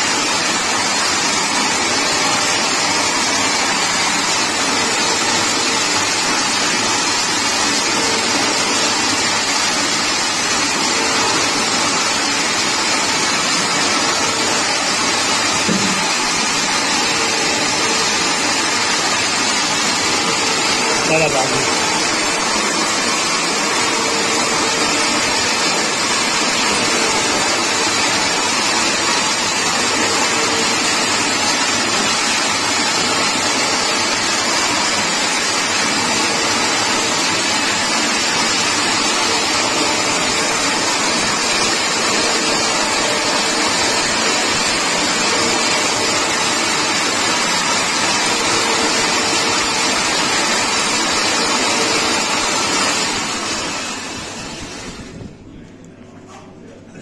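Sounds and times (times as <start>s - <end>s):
winding machine whirring: 0.0s - 55.4s.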